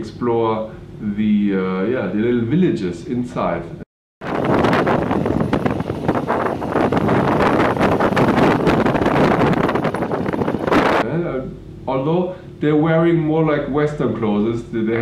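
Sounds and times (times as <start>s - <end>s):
wind buffeting microphone: 4.2s - 11.0s.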